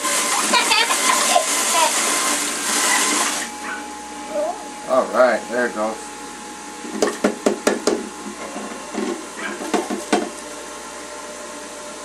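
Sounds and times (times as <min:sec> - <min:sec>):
juicer motor humming: 0:00.0 - 0:12.0
knocking and clattering of fruit: 0:07.0 - 0:10.4.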